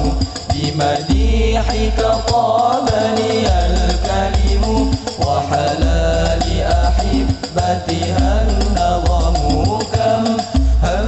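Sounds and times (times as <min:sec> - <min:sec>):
frame drums: 0:00.0 - 0:11.0
male voices singing together: 0:00.0 - 0:11.0.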